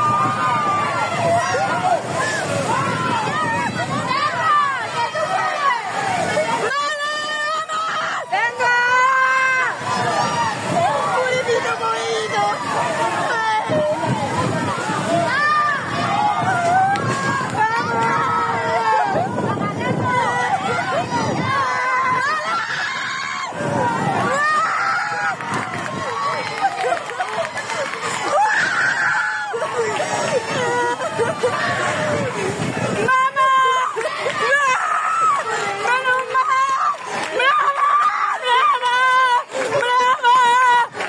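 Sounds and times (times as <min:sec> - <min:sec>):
floodwater rushing: 0:00.0 - 0:41.0
people shouting: 0:00.0 - 0:41.0.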